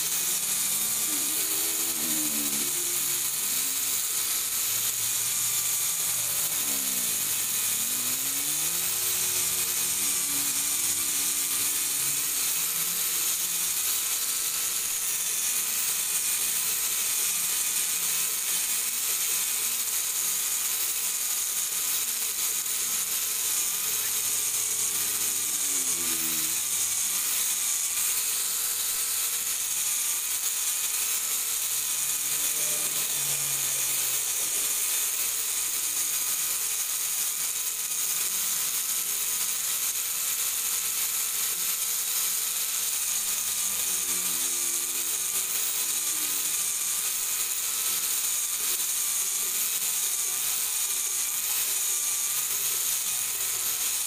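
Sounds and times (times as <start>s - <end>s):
power drill motor whine: 0.0s - 54.0s
sanding disc hissing on wood: 0.0s - 54.0s.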